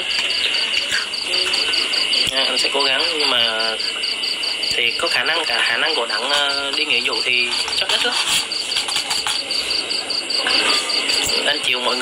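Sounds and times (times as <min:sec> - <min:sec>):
constant hiss: 0:00.0 - 0:12.0
insects chirping: 0:00.0 - 0:12.0.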